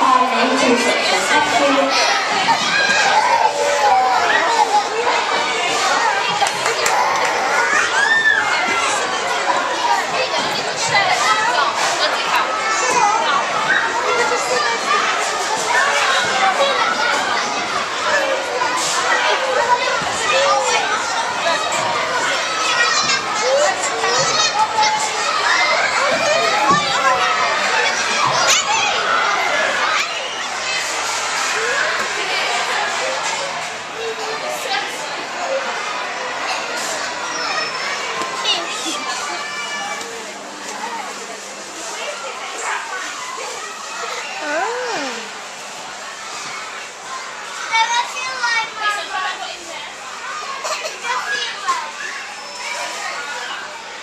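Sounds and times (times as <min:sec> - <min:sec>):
children playing and shouting: 0:00.0 - 0:54.0.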